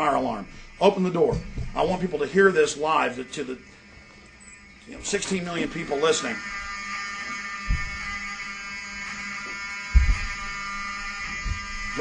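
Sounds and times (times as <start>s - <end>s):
fire alarm buzzing: 0.0s - 12.0s
dull low thumps: 7.6s - 8.2s, 10.0s - 10.5s.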